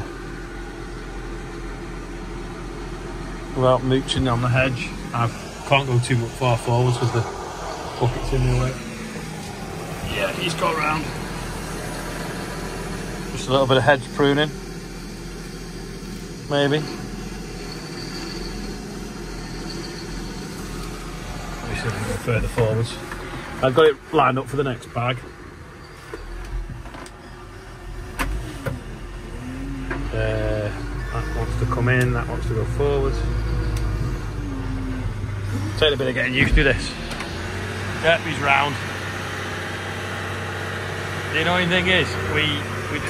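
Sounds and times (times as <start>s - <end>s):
diesel engine idling: 0.0s - 43.0s
brief whine: 4.7s - 11.2s.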